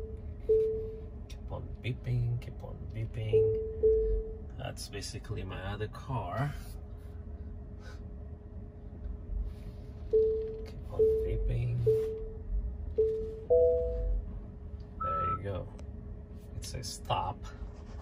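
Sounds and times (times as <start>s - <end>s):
park assist chime beeping: 0.0s - 1.0s, 3.2s - 4.4s, 10.1s - 12.3s, 13.0s - 14.2s.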